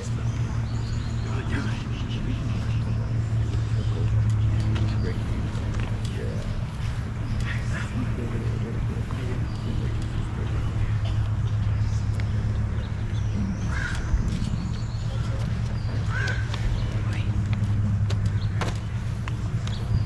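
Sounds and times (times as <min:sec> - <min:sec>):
distant indistinct talking: 0:00.0 - 0:20.0
steady low hum: 0:00.0 - 0:20.0
crow cawing: 0:13.5 - 0:14.2, 0:16.0 - 0:16.7.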